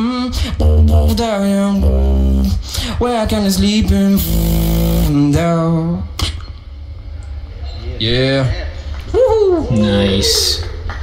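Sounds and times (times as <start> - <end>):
beatboxing vocal bass note: 0.0 - 6.4.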